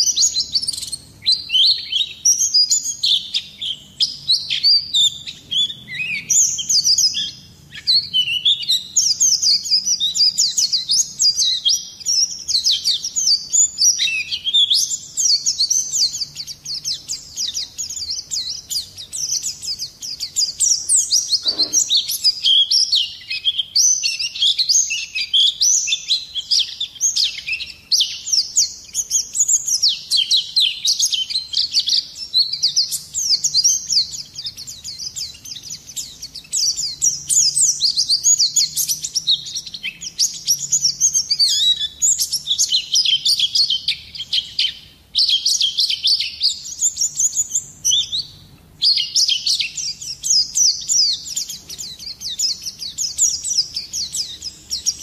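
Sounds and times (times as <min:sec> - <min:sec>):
bird chirping and twittering: 0:00.0 - 0:55.0.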